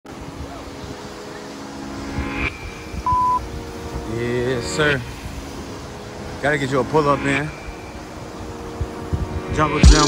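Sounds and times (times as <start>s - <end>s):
droning chord of steady tones: 0.1s - 9.8s
short loud pure beep: 3.0s - 3.4s.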